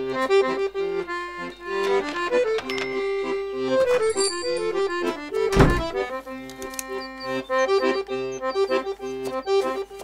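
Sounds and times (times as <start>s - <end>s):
accordion music: 0.0s - 10.0s
wooden door shutting: 4.9s - 6.1s.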